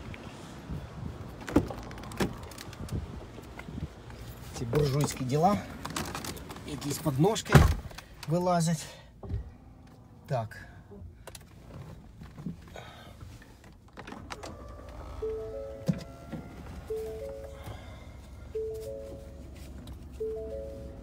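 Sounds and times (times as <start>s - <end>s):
rising three-note warning chime: 18.5s - 19.4s.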